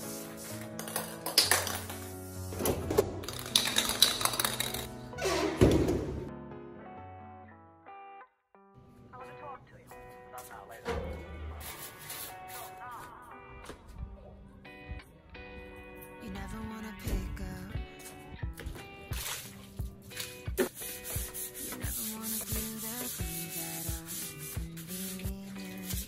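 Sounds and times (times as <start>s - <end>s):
background music with a beat: 14.8s - 26.0s
aerosol can spraying: 20.2s - 26.0s.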